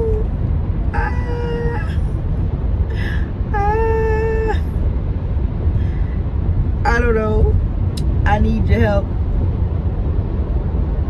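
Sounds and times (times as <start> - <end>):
road noise inside moving car: 0.0 - 11.0.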